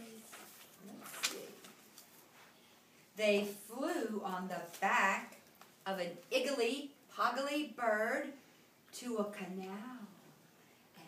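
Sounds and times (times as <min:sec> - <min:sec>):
paper rustling: 0:00.0 - 0:02.6.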